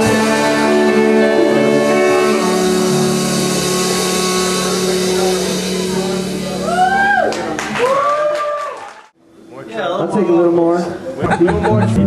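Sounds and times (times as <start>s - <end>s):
amplified instruments droning chord: 0.0s - 7.6s
cymbals washing: 0.0s - 7.6s.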